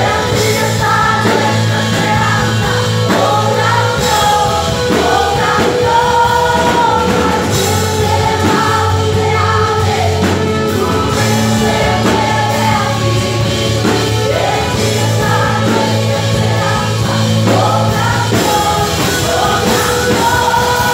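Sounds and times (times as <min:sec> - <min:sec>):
drums: 0:00.0 - 0:20.9
electric guitars: 0:00.0 - 0:20.9
keyboard: 0:00.0 - 0:20.9
singers singing together: 0:00.0 - 0:20.9.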